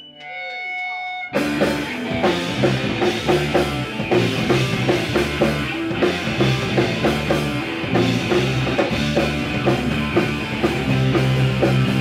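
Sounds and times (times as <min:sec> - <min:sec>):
electric guitar notes ringing: 0:00.0 - 0:12.0
punk rock band playing live: 0:00.2 - 0:12.0.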